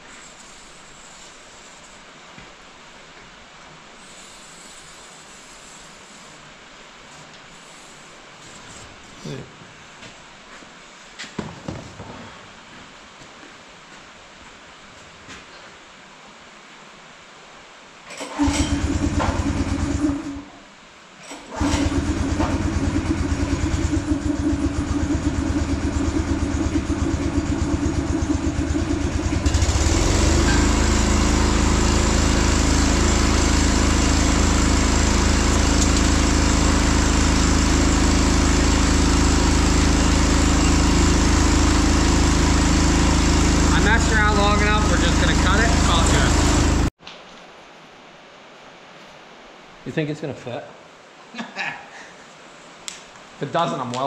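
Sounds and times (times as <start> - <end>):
loud motor running: 21.5 - 46.9.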